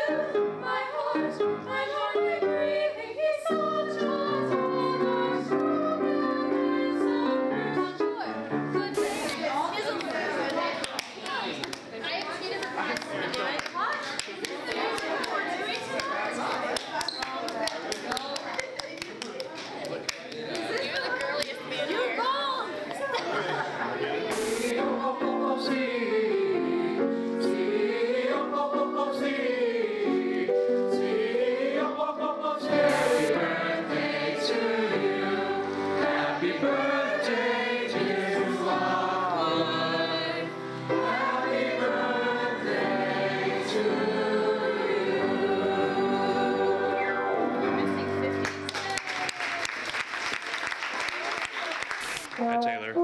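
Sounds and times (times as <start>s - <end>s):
choir singing long notes: 0.0s - 8.0s, 24.3s - 47.8s
background chatter: 8.8s - 24.8s
excited voices and laughter: 20.6s - 24.3s.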